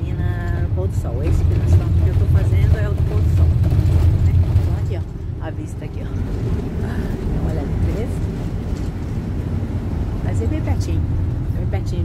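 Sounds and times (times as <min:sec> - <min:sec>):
bus engine and road rumble: 0:00.0 - 0:12.0.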